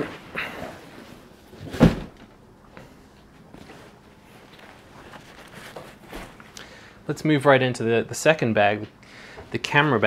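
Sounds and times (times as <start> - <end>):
fabric rustling: 3.5 - 6.5.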